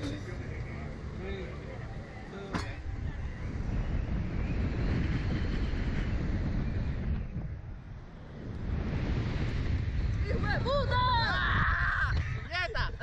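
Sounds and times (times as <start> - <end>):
wind rushing over microphone: 0.0 - 13.0.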